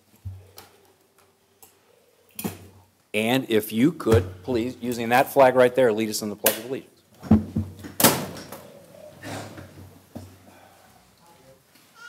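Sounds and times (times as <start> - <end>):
chairs and people rustling: 7.1 - 12.0.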